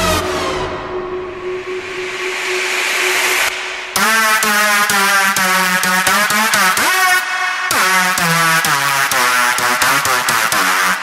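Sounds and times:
held synth note: 0.0s - 8.4s
bright horn-like synth lead: 0.0s - 11.0s
white-noise riser: 1.2s - 6.0s.

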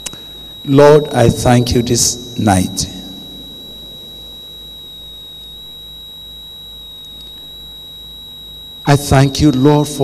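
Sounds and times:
high-pitched electronic whine: 0.0s - 10.0s
low electrical hum: 0.0s - 10.0s.

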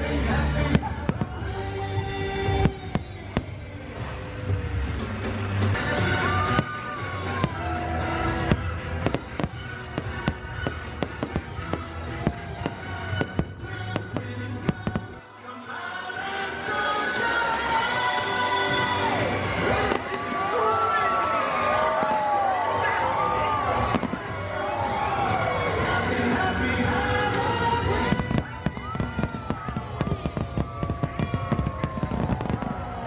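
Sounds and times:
fireworks bangs and crackles: 0.0s - 15.4s, 16.5s - 33.0s
show music: 0.0s - 33.0s.

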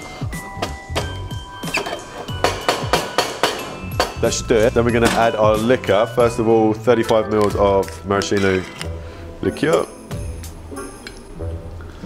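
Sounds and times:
background music with a beat: 0.0s - 12.0s.

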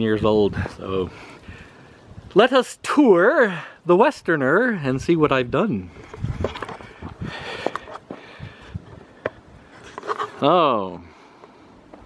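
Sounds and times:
camera handling rustle: 6.0s - 8.2s, 8.9s - 10.5s.

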